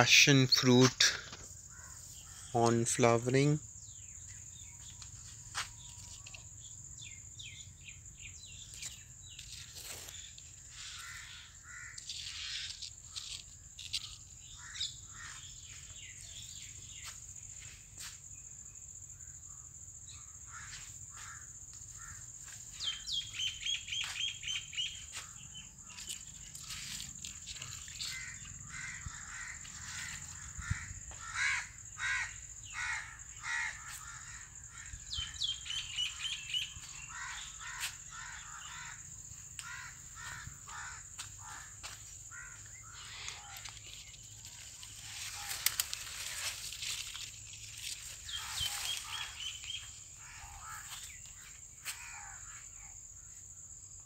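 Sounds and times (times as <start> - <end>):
birds calling: 0.0 - 17.6, 20.2 - 52.8
high-pitched insect drone: 0.0 - 54.0.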